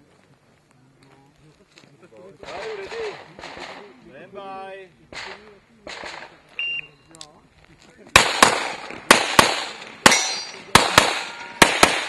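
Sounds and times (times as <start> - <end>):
handgun shots echoing: 8.2 - 12.0.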